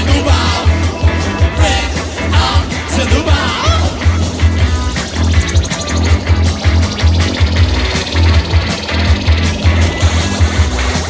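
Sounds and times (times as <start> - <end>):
pulsing bass line: 0.0 - 11.0
rock band playing: 0.0 - 11.0.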